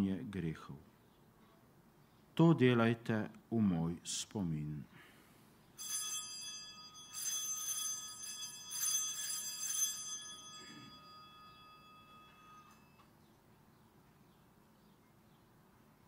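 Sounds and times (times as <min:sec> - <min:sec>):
altar bells ringing: 0:05.8 - 0:13.2.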